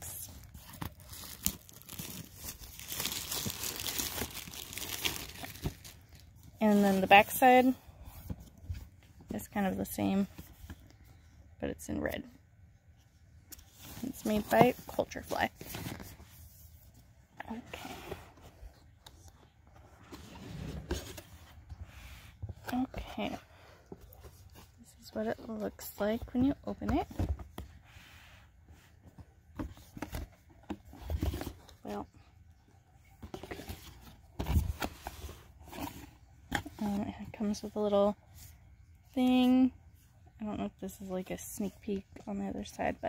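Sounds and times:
cardboard scraping and rustling: 19.7s - 22.6s, 33.2s - 36.8s.

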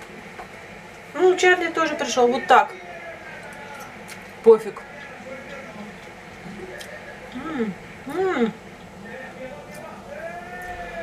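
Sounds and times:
person chewing: 3.4s - 4.4s, 5.9s - 7.5s
woman humming: 7.3s - 8.6s.

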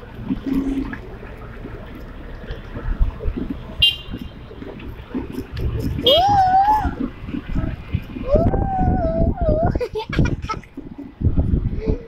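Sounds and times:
road and motor rumble: 0.0s - 12.0s.

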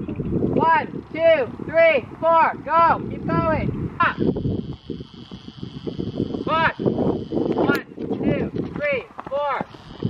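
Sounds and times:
horse hoofbeats on sand: 7.3s - 10.0s.

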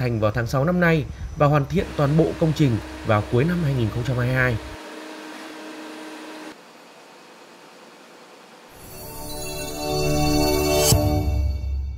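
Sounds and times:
concrete pump hiss: 1.0s - 8.9s
concrete pump hum: 1.1s - 9.0s.

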